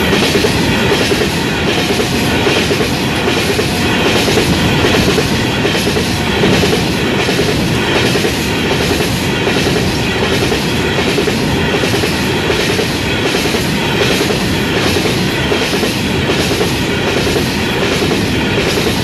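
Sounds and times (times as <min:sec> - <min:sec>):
rumble of freight wagons: 0:00.0 - 0:19.0.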